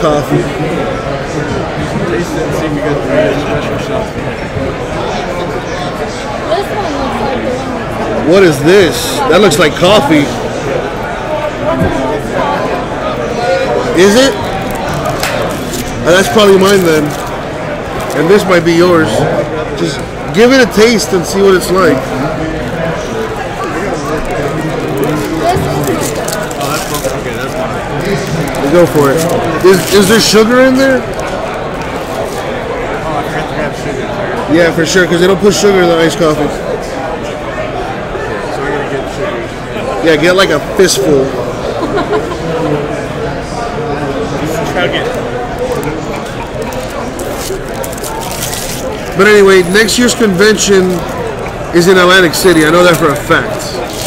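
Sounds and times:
low voices talking: 0:00.0 - 0:54.0
foil wrapper crinkling: 0:14.4 - 0:18.5, 0:23.3 - 0:32.5, 0:45.0 - 0:51.6, 0:52.2 - 0:54.0.

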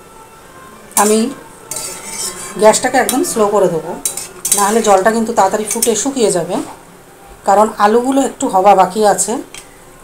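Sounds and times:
spatula scraping metal pot: 0:01.0 - 0:06.1
spatula stirring curry in pot: 0:01.7 - 0:03.3, 0:04.0 - 0:06.2.

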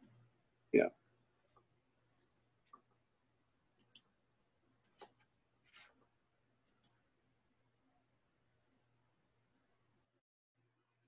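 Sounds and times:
computer mouse clicks: 0:03.8 - 0:04.1, 0:04.8 - 0:05.9, 0:06.6 - 0:07.0.

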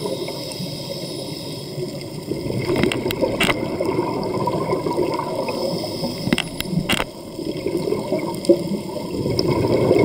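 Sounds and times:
underwater air bubbles gurgling: 0:00.0 - 0:10.0.

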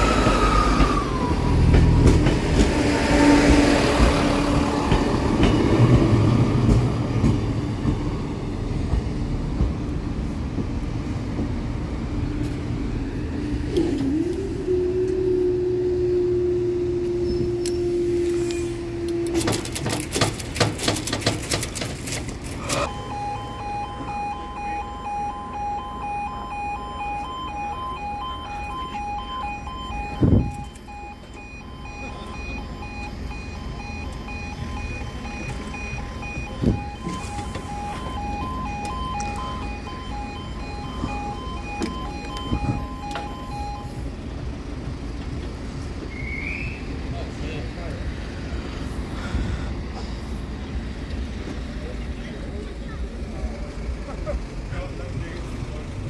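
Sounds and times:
level crossing alarm two-tone: 0:22.8 - 0:44.1.

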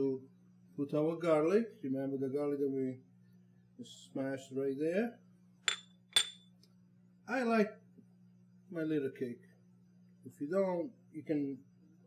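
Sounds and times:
ceramic bowl clinking on cookware: 0:05.7 - 0:06.4.

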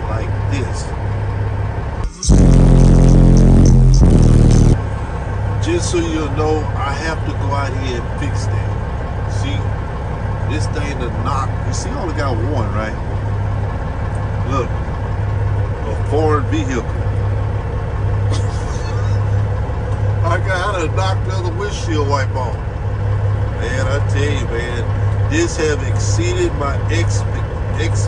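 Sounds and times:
diesel engine idling: 0:00.0 - 0:28.0
short vocal sound: 0:02.1 - 0:04.8
deep bass note from subwoofer: 0:02.1 - 0:05.0.

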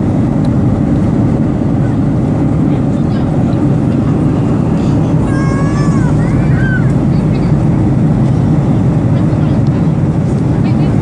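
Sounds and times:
airliner cabin engine drone: 0:00.0 - 0:11.0.

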